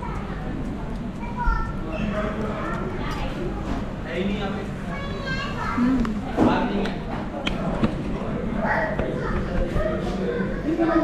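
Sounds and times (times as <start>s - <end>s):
indistinct chatter: 0.0s - 11.0s
children's voices: 1.2s - 3.8s, 4.8s - 6.4s, 8.6s - 11.0s.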